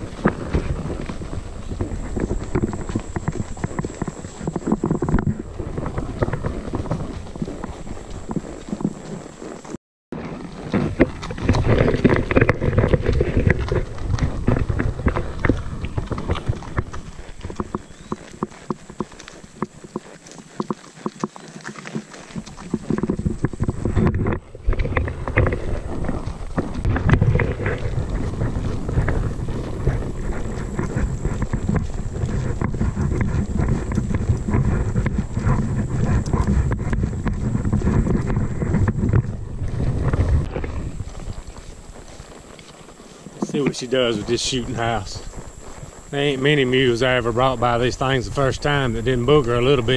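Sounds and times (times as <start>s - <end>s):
hooves clip-clopping: 0.0s - 49.9s
rustling through grass: 0.0s - 49.9s.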